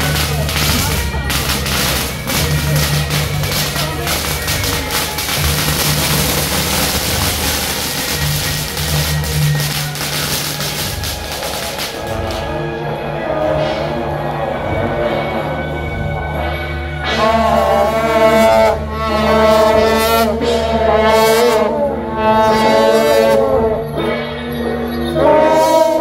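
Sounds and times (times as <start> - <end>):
firecrackers crackling: 0.0 - 12.8
music playing: 0.0 - 26.0.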